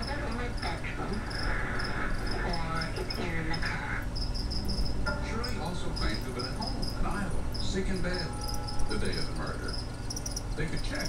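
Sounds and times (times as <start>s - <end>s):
crickets chirping: 0.0s - 11.0s
faint television voices: 0.0s - 11.0s.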